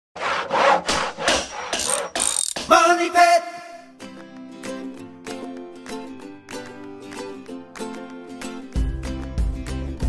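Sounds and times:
saw cutting wood: 0:00.2 - 0:02.7.

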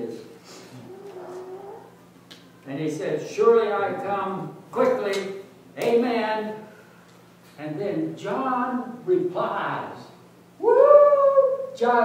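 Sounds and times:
man speaking: 0:02.7 - 0:06.6.

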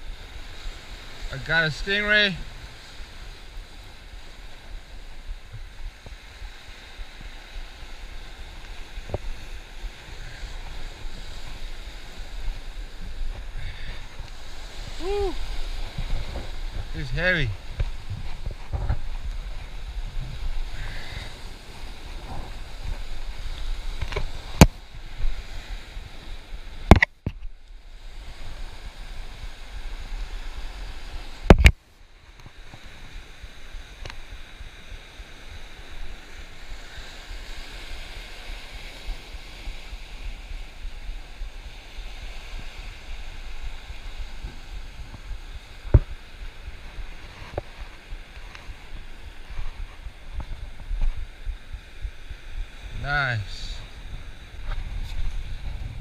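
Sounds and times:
waves breaking on rocks: 0:00.0 - 0:56.0
wind on microphone: 0:02.1 - 0:56.0.

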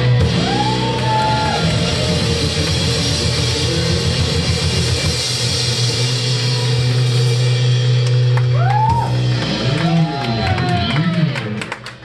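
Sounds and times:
low bass line: 0:00.0 - 0:11.7
drum kit: 0:00.0 - 0:12.0
electric guitars: 0:00.0 - 0:12.0.

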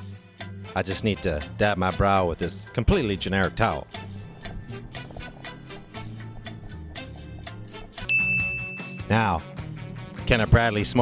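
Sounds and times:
soft background music: 0:00.0 - 0:11.0
bell-like ding: 0:08.0 - 0:09.3.

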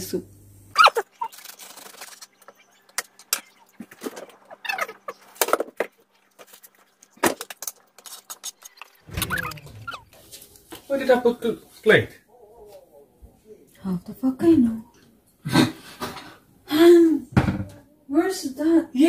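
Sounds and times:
quiet talking: 0:12.3 - 0:15.1.

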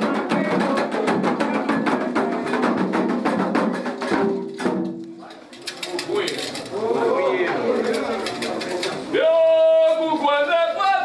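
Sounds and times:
voices singing: 0:00.0 - 0:04.2
fast percussion drumming: 0:00.0 - 0:05.0, 0:07.9 - 0:09.1.

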